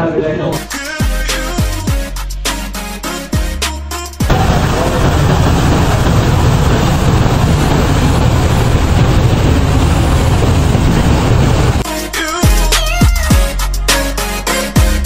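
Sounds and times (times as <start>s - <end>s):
motorboat engine and wake: 4.3s - 11.8s.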